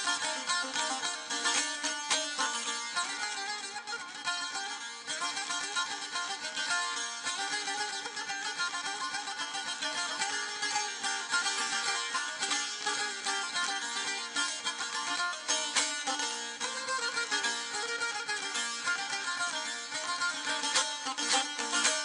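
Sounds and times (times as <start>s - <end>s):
lute strumming and plucking: 0.0s - 22.0s.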